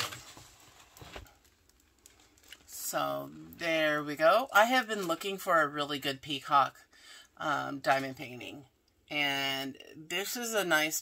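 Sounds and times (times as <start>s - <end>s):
plastic rustling: 0.0s - 2.8s.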